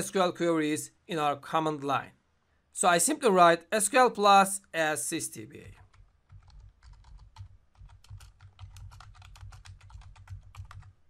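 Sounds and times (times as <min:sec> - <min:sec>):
typing on keyboard: 0:05.7 - 0:11.0.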